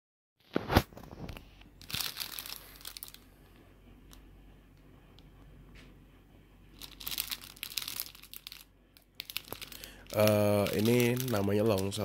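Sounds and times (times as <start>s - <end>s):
bread wrapper crinkling: 0.6s - 3.3s, 6.8s - 12.0s.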